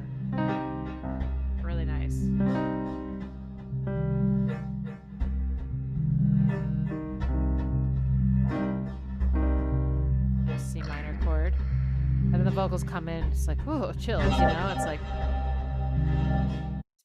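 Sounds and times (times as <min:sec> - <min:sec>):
deep sustained bass: 0:00.0 - 0:16.8
keyboard chords: 0:00.0 - 0:16.8.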